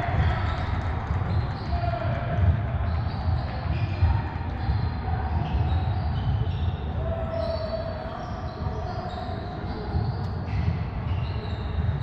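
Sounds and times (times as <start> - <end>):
low rumble of sports hall: 0.0 - 12.0.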